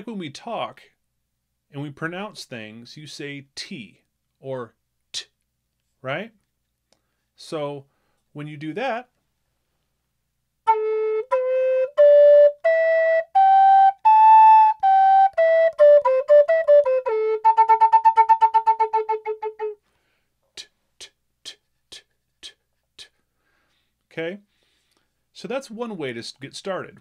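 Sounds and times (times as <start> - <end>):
flute playing a scale: 10.7 - 19.8.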